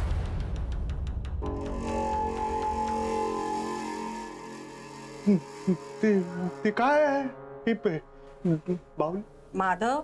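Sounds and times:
sustained music chord: 1.4 - 9.3.

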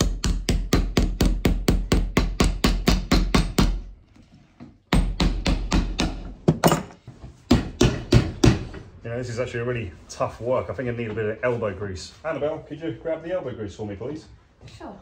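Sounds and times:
hammer striking nails into leather: 0.0 - 3.9.

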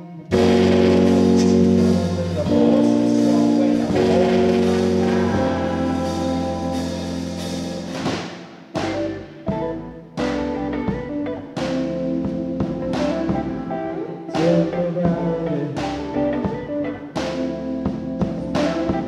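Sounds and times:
live band sustained chords: 0.0 - 19.0.

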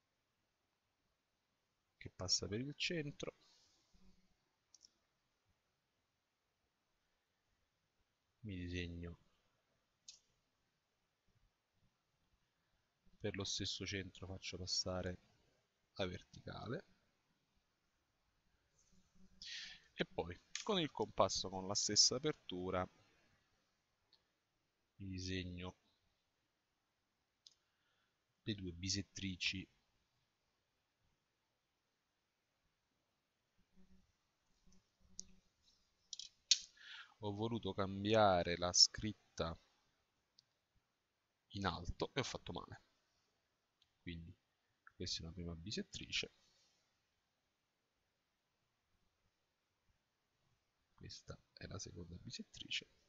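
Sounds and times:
drawing tools clicking: 36.1 - 36.7.

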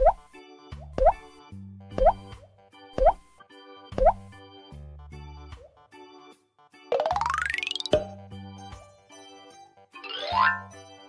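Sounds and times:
children's keyboard music: 0.1 - 11.0
cartoon bloop pops: 2.0 - 2.2, 6.9 - 8.1.

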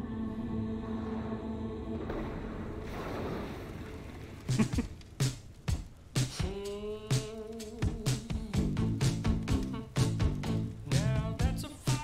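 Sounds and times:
music track: 4.5 - 12.0.

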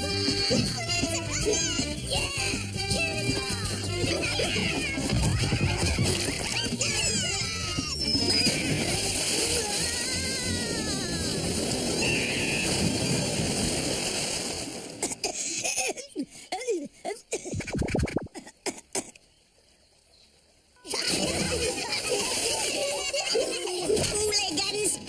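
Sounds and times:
cartoon music: 0.0 - 11.3
water splashing: 2.1 - 7.4, 8.0 - 15.4, 17.4 - 18.5, 20.9 - 24.9.

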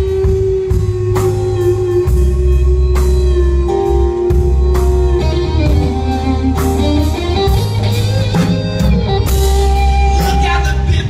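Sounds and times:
electric guitar notes: 0.0 - 11.0
live blues band instrumental: 0.0 - 11.0.

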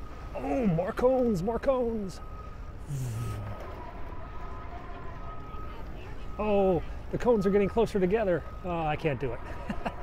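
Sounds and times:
bicycle road rumble: 0.0 - 10.0
wind: 0.0 - 10.0
brief low hum: 2.8 - 3.9.

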